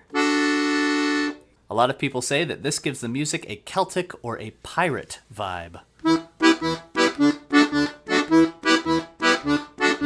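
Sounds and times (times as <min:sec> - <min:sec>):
accordion playing lively notes: 0:00.0 - 0:01.4, 0:06.0 - 0:10.0.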